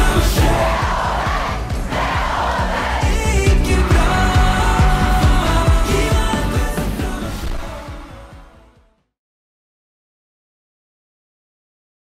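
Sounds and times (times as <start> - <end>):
concert crowd cheering: 0.0 - 7.2
pop music with kick drum: 0.0 - 9.0.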